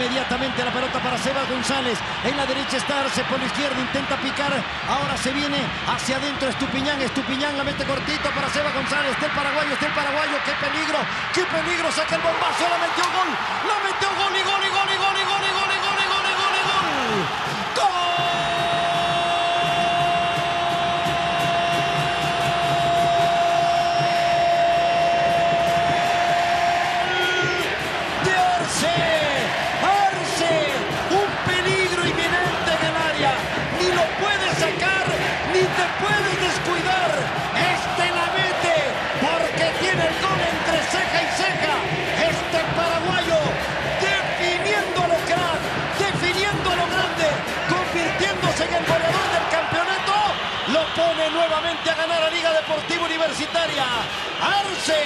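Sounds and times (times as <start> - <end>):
sportscaster shouting goal: 0.0 - 55.0
stadium crowd cheering and singing: 0.0 - 55.0.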